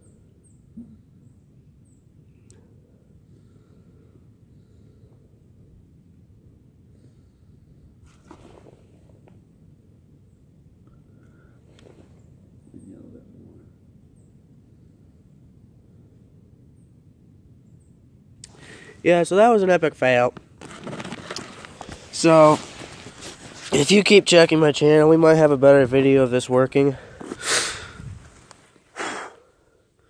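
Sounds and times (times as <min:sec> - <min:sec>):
steady low rumble: 0:21.5 - 0:28.9.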